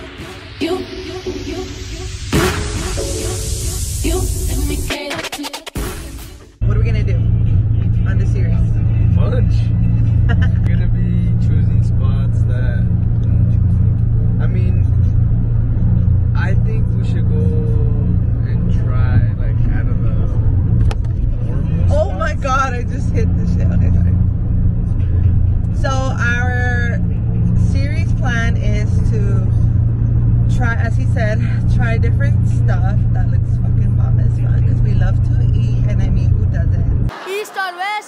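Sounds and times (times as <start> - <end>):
road noise: 0.0 - 4.9, 6.4 - 38.0
car engine rumble: 6.4 - 37.2.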